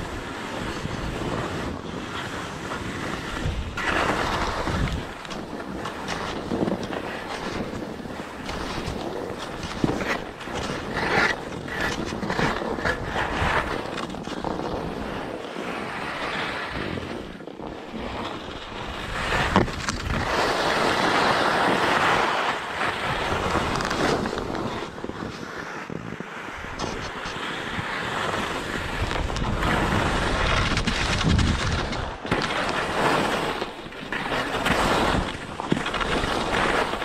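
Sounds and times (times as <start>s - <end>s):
skis scraping over snow: 0.0s - 37.0s
wind buffeting microphone: 0.0s - 37.0s.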